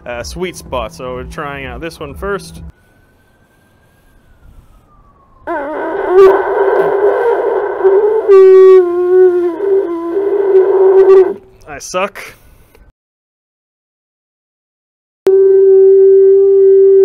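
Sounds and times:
cattle horn blown: 5.5 - 11.4, 15.3 - 17.0.

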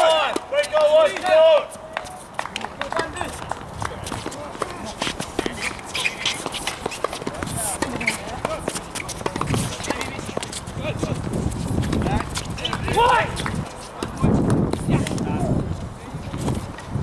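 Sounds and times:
voices talking and calling out: 0.0 - 16.9
shoe steps on court: 2.0 - 17.0
racket hitting tennis ball: 2.4 - 15.3
ball bounces: 2.6 - 11.2.

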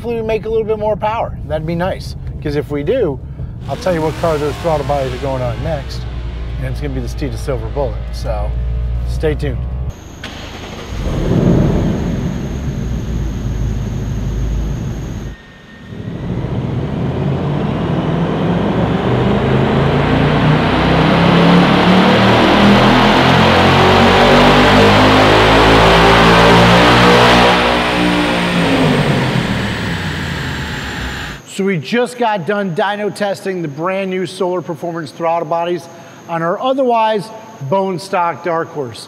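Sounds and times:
high whine: 0.0 - 39.0
car engine revving on a dyno: 3.6 - 31.4.

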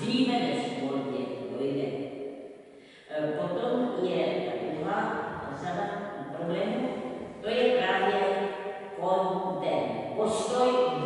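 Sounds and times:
elderly woman speaking: 0.0 - 1.9, 3.1 - 8.3, 9.0 - 11.0.

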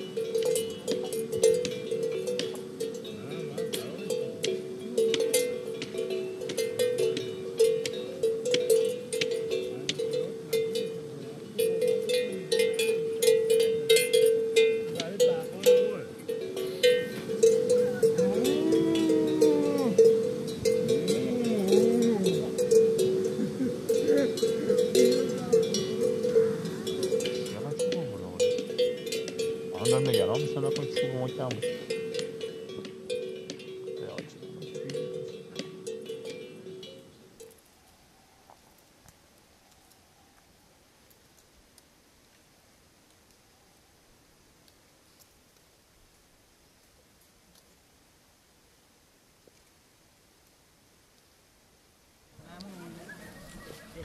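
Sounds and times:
cow bell clanking: 0.0 - 37.6
cow mooing: 17.7 - 27.3.

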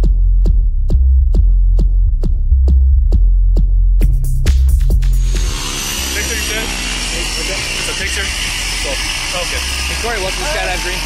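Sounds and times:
people talking: 6.1 - 11.0.

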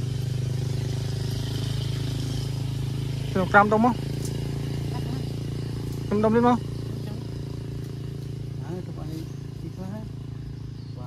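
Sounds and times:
low mechanical drone: 0.0 - 11.0.

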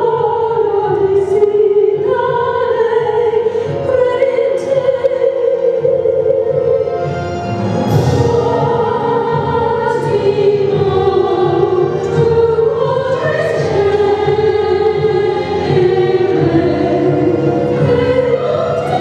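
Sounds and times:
instrumental accompaniment: 0.0 - 19.0
mixed choir singing: 0.0 - 19.0
soloists singing: 0.0 - 19.0.

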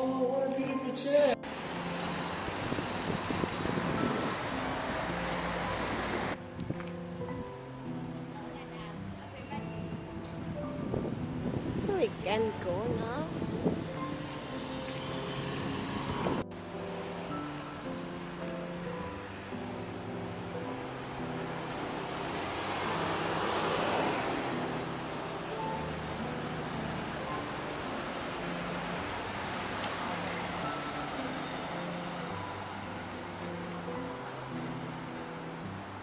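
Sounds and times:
light instrumental music: 0.0 - 36.0
vehicle passing: 1.4 - 6.4, 11.1 - 36.0
car road noise: 1.4 - 9.2, 9.8 - 36.0.

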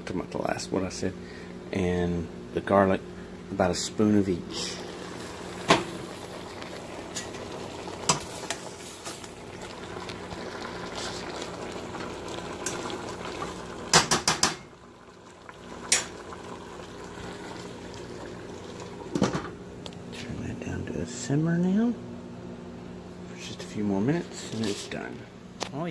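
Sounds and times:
pot boiling hard: 3.6 - 19.8.

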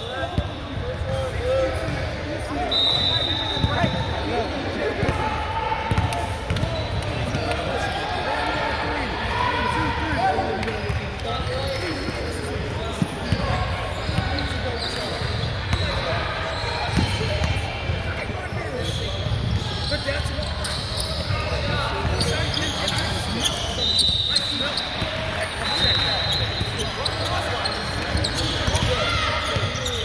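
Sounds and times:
indistinct chatter: 0.0 - 30.0.

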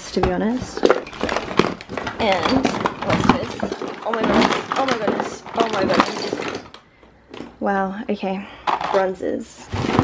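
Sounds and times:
plastic containers clattering in box: 0.0 - 7.6, 8.6 - 10.0.

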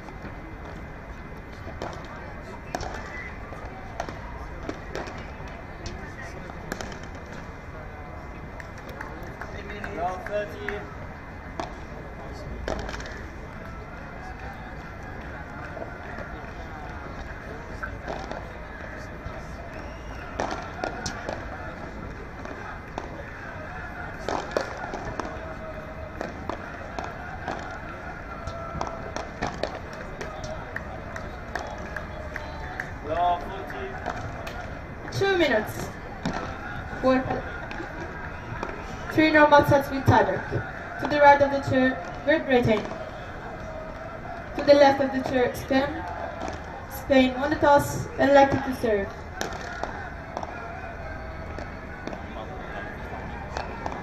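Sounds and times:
rackets striking ball: 0.0 - 7.5, 11.5 - 11.9, 12.6 - 13.7, 14.8 - 50.8, 51.4 - 54.0
ball bouncing: 33.9 - 43.0, 44.5 - 50.6.

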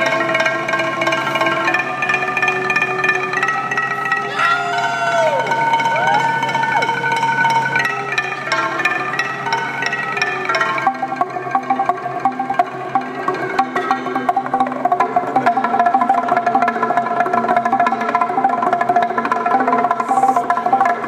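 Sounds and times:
wooden planks struck rhythmically: 0.0 - 21.0.

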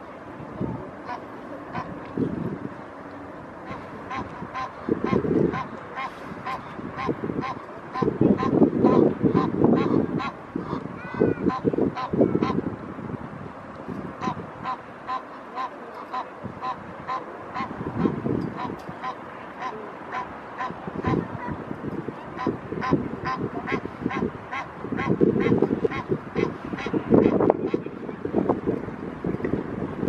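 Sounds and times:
low rumbling noise: 0.0 - 30.0
geese calling: 1.0 - 1.9, 3.6 - 12.6, 14.2 - 21.6, 22.2 - 27.9.

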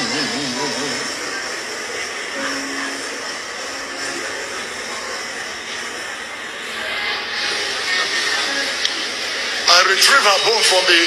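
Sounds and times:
recording hiss through phone speaker: 0.0 - 11.0.

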